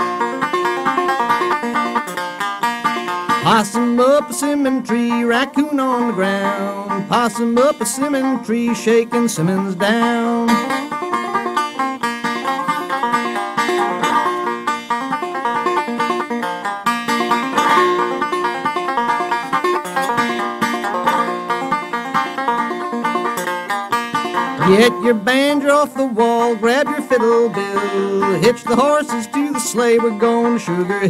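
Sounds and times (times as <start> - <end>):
string band with banjo: 0.0 - 31.0
person singing: 3.4 - 11.6, 24.5 - 31.0.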